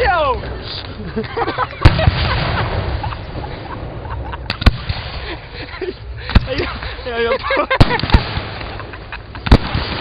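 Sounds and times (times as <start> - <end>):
fireworks bursting with bangs: 1.8 - 5.6, 6.3 - 7.0, 7.7 - 10.0
small fireworks pops: 9.4 - 10.0.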